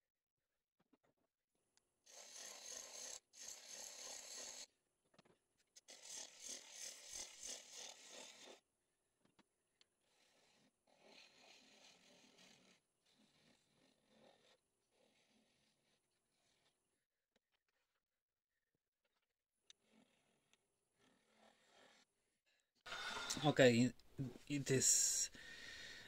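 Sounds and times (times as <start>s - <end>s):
lathe tool scraping wood: 2.1s - 4.7s, 5.9s - 8.6s, 10.0s - 16.8s, 19.7s - 22.1s, 22.9s - 23.9s.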